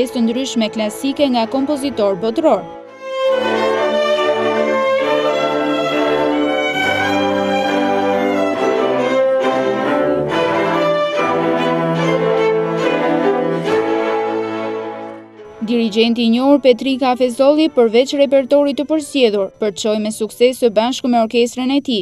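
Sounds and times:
string orchestra playing: 0.0s - 18.8s.

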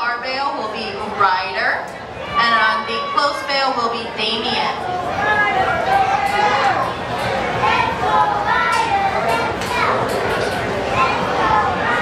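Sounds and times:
children chattering and calling out: 0.0s - 12.0s.

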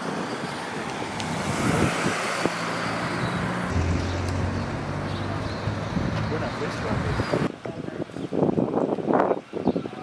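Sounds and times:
car passing: 1.0s - 7.5s
low engine hum: 2.4s - 7.4s.

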